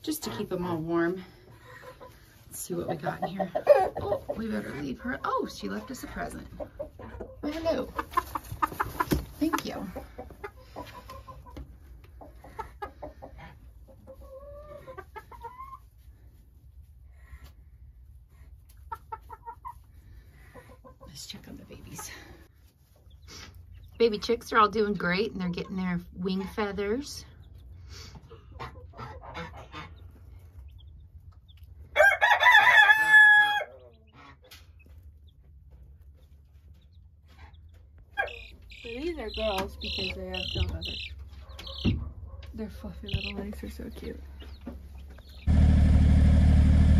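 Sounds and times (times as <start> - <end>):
hens clucking: 0.0 - 45.5
rooster crowing: 32.0 - 33.8.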